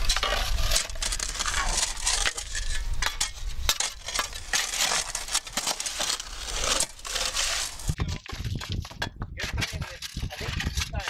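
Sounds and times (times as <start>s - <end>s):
shovel crunching into gravelly sand: 0.0s - 8.0s.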